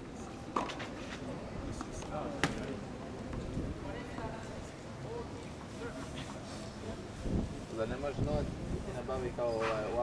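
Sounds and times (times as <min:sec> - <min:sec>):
faint voices: 0:00.0 - 0:10.0
racket striking tennis ball: 0:02.4 - 0:02.7.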